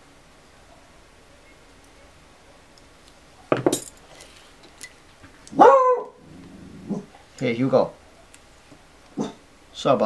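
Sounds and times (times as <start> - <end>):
dog barking: 0.6 - 1.0, 5.5 - 6.2, 9.2 - 9.4.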